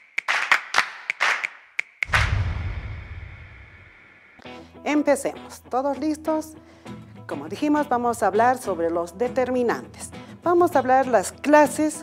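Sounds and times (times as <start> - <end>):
deep boom: 2.1 - 4.4.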